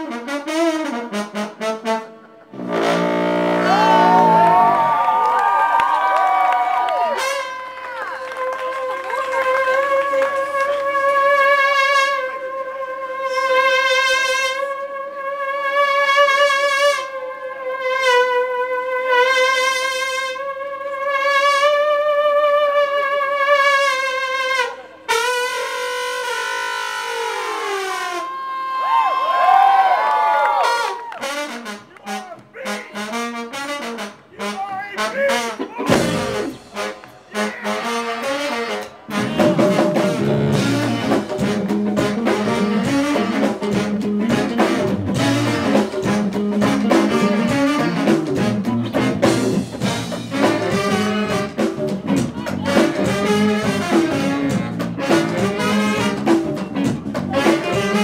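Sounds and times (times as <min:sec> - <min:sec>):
brass-led funk band: 0:00.0 - 0:05.2, 0:06.3 - 0:28.5, 0:29.6 - 0:58.0
crowd cheering and whooping: 0:03.6 - 0:10.2, 0:27.1 - 0:31.4.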